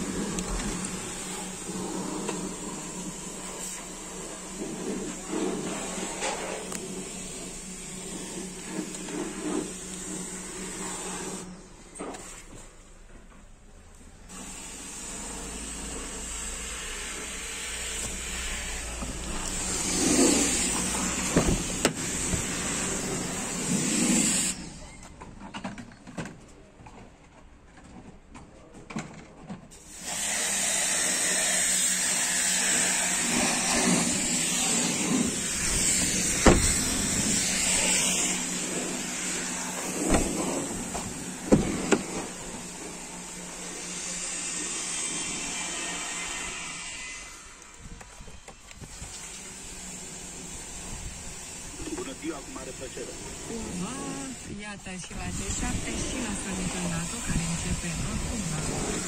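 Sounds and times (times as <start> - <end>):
steady hiss: 48.6 - 54.5.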